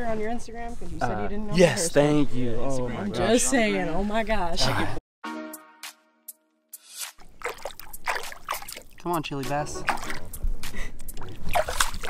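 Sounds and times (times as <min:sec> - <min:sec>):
small splashes: 0:07.2 - 0:12.0
water sloshing and trickling: 0:07.2 - 0:12.0.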